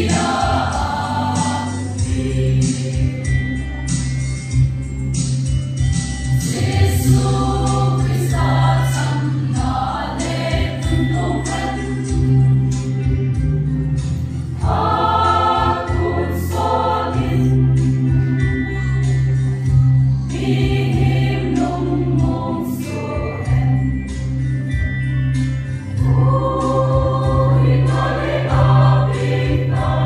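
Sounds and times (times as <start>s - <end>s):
mixed choir singing: 0.0s - 3.4s, 6.4s - 12.7s, 14.6s - 18.5s, 20.3s - 23.9s, 26.0s - 30.0s.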